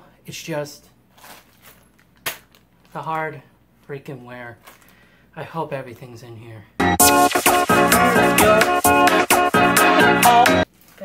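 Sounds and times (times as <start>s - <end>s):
plastic bag rustling: 1.0s - 3.9s, 4.5s - 5.0s, 10.6s - 11.0s
plastic bag sharp crinkle: 1.1s - 3.0s.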